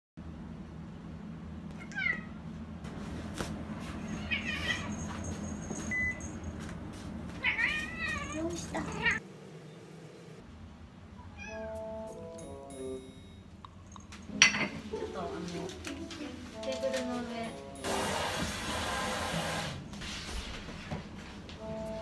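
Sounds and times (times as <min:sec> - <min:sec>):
cat meowing: 0:01.7 - 0:02.3, 0:04.2 - 0:04.9, 0:07.4 - 0:09.2, 0:11.2 - 0:11.7.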